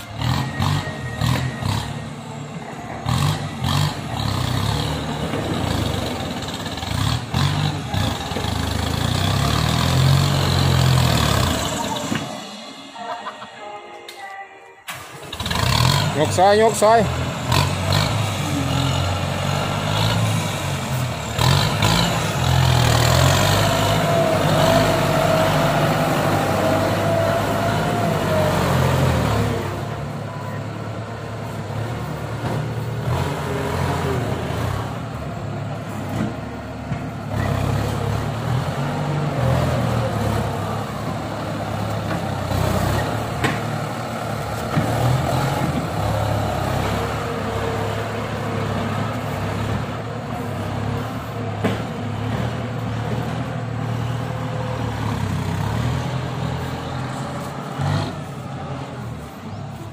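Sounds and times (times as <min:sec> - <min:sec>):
diesel tractor engine under load: 0:00.0 - 0:13.0, 0:14.9 - 0:59.9.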